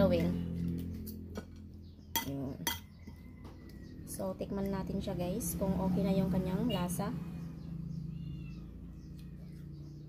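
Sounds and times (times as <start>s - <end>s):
metal spoon clinking bowl: 1.0s - 3.1s.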